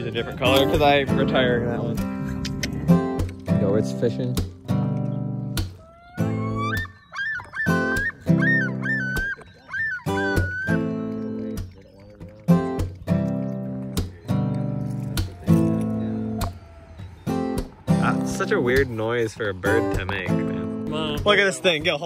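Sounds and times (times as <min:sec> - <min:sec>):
strummed acoustic guitar music: 0:00.0 - 0:22.0
loon calling: 0:05.0 - 0:20.8.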